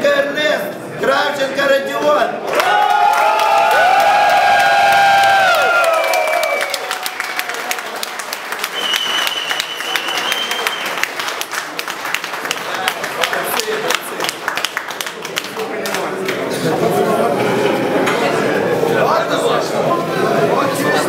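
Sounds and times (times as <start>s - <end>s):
audience applauding: 2.5s - 16.5s.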